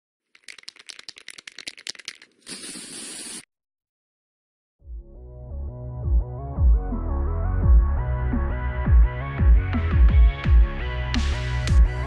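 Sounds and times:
spray can mixing ball rattling: 0.3s - 3.4s
spray hissing: 2.4s - 3.4s.

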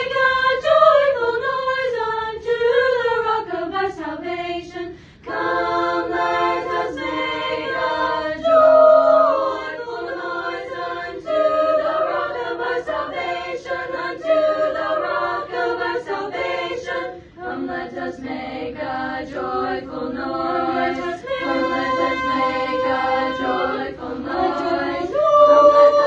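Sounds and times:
choir singing a cappella: 0.0s - 26.0s
singers breathing: 4.9s - 5.2s, 17.1s - 17.4s.

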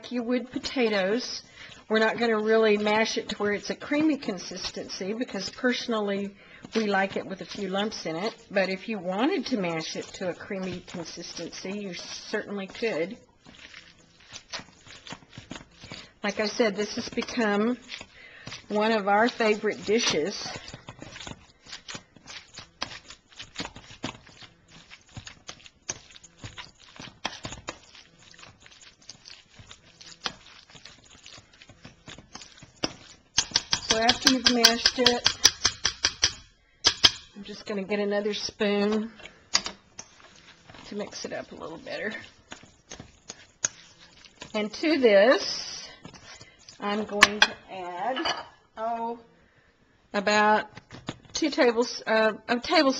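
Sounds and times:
spoon stirring in metal bowl: 0.0s - 48.6s
masher knocking in metal bowl: 33.4s - 37.4s.

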